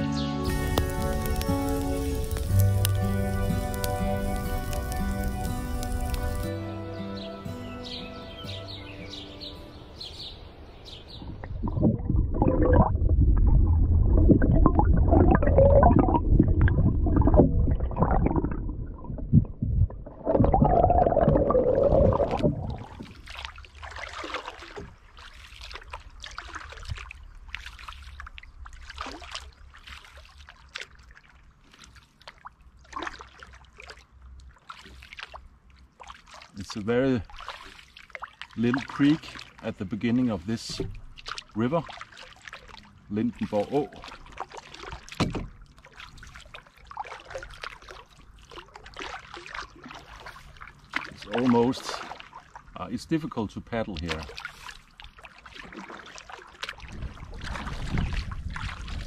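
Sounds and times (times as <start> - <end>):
instrumental music: 0.0 - 9.8
paddling splashes and drips: 0.0 - 59.0
paddle churning underwater: 0.4 - 6.6, 11.1 - 59.0.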